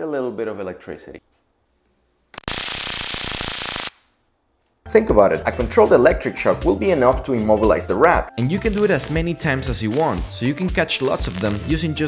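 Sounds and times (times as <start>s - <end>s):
electric arc crackling: 2.4s - 4.1s, 8.7s - 11.8s.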